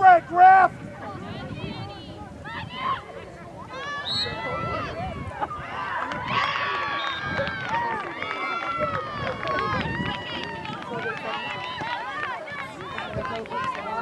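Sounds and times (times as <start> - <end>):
voices shouting and calling: 0.0 - 14.0.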